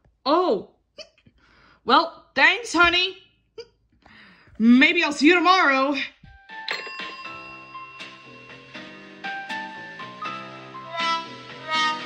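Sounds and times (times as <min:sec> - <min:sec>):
gentle instrumental music: 0:06.1 - 0:12.0.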